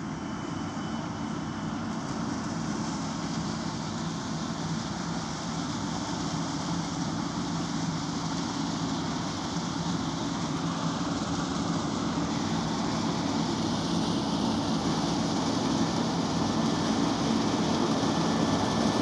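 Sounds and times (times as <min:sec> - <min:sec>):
combine harvester droning: 0:00.0 - 0:19.0.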